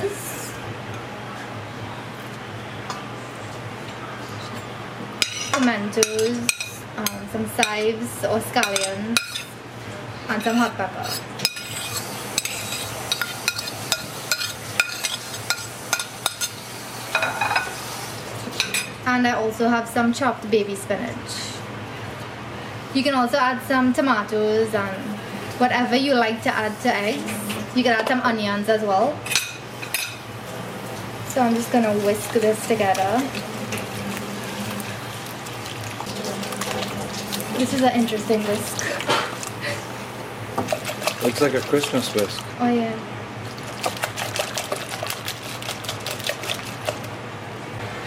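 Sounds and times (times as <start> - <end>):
whisk beating eggs in metal bowl: 31.4 - 39.1, 40.6 - 42.5, 43.5 - 47.1.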